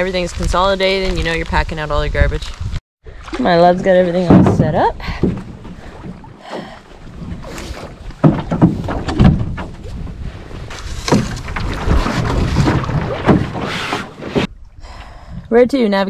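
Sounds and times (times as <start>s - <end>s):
wind on microphone: 0.0s - 2.8s
canoe hull scraping on rock: 7.0s - 14.5s.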